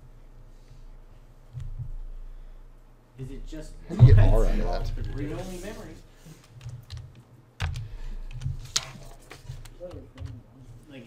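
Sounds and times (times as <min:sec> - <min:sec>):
loud keyboard knock: 0:06.7 - 0:08.6.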